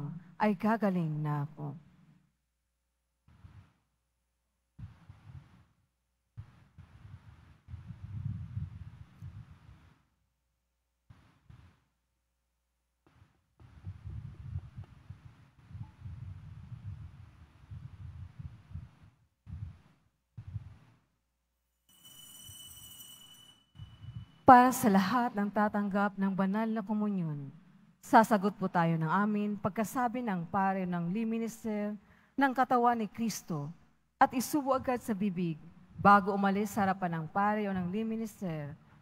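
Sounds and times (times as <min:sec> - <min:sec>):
faint high-pitched tone: 0:21.9 - 0:24.9.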